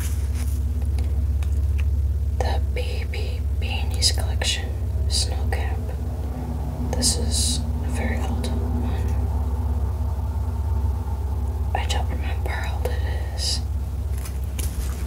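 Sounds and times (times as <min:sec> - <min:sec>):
steady low hum: 0:00.0 - 0:15.0
woman whispering: 0:02.4 - 0:06.0, 0:06.8 - 0:09.3, 0:11.7 - 0:13.7.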